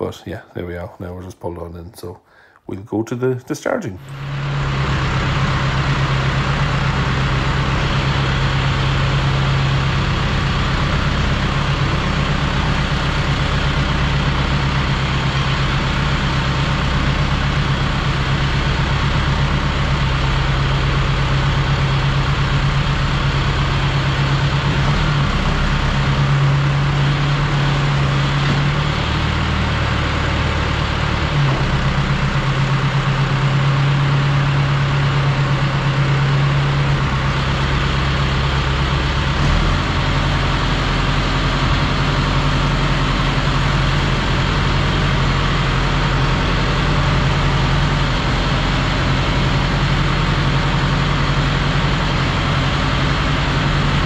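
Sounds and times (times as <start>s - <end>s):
tractor engine running: 4.0s - 54.0s.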